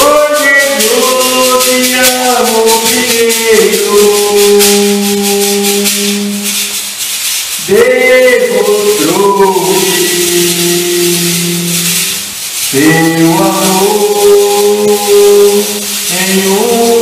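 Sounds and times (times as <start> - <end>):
man singing through microphone: 0.0 - 6.8, 7.6 - 17.0
maraca shaking: 0.0 - 17.0.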